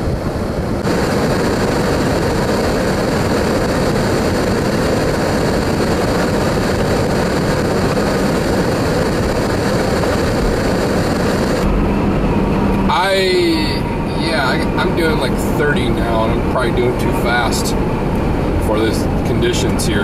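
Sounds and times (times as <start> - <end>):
tyre and road noise: 0.0 - 20.0
wind against a car: 0.0 - 20.0.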